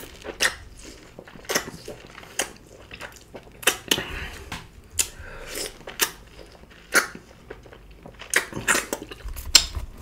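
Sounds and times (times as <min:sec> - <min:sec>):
food crunching: 0:00.0 - 0:10.0.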